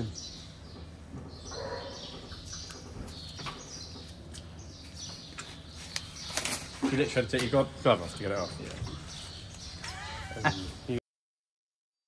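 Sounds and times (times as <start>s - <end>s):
small birds chirping: 0.0s - 11.0s.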